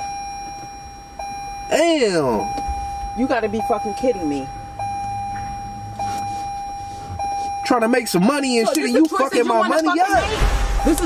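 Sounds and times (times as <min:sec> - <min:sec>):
steady electronic beep tone: 0:00.0 - 0:08.6, 0:10.2 - 0:11.0
low hum inside car: 0:00.0 - 0:11.0.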